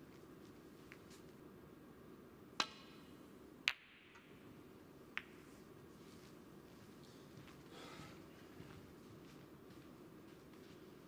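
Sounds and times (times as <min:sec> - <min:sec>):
snooker balls clicking: 0:05.1 - 0:05.5.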